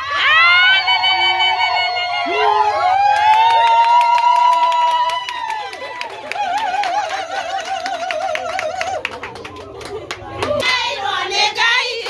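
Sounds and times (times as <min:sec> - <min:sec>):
fast rhythmic hand clapping: 0:03.2 - 0:10.8.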